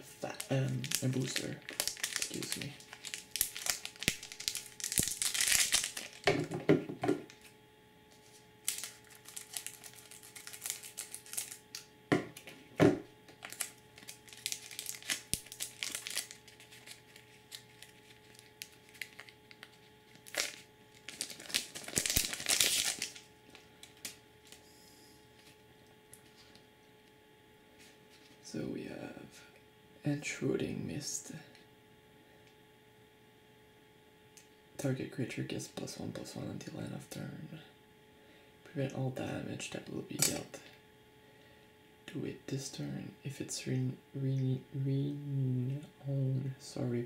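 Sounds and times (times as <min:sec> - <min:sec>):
foil wrapper crinkling: 0:00.1 - 0:06.4, 0:08.3 - 0:11.8, 0:13.3 - 0:24.6.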